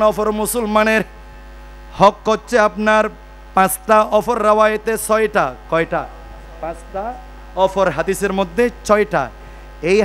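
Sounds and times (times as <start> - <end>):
man's amplified voice: 0.0 - 1.2, 1.9 - 10.0
electrical mains hum: 0.0 - 10.0.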